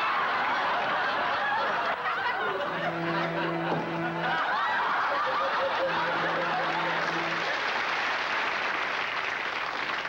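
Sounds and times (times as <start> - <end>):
studio audience laughing: 0.0 - 8.5.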